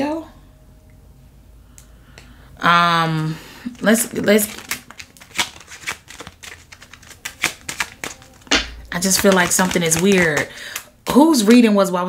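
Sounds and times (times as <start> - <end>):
cards being shuffled: 3.7 - 10.8.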